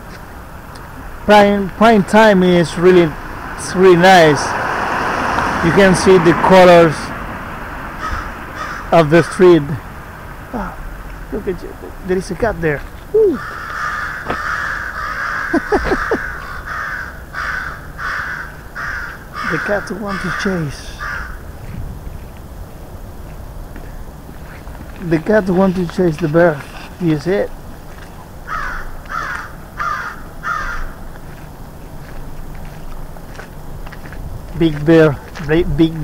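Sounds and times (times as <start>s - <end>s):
crow cawing: 7.9s - 9.8s, 13.2s - 21.5s, 28.4s - 31.0s.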